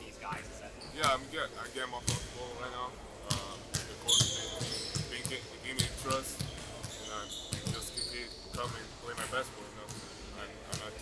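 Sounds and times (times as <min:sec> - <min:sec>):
sneakers squeaking on court: 0:00.3 - 0:01.2, 0:03.2 - 0:11.0
basketballs bouncing on wooden floor: 0:03.2 - 0:07.9.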